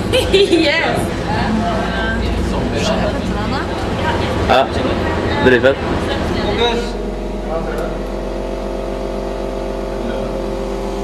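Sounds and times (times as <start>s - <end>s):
machine hum: 0.0s - 11.0s.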